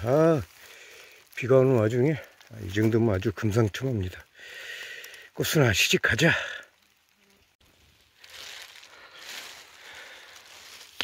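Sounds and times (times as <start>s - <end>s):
rustling through wet foliage: 0.0s - 11.0s.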